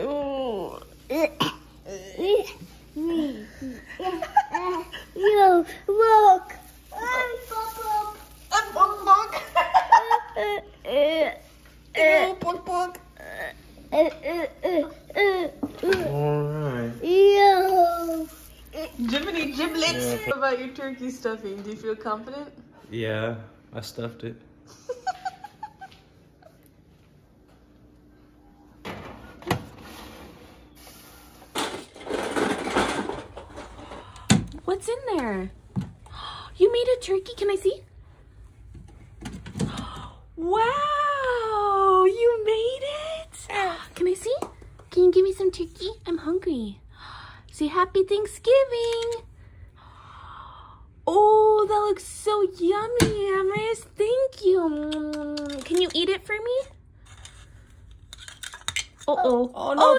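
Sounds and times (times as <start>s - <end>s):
child making vocal sounds: 0.0s - 3.8s, 17.0s - 19.0s.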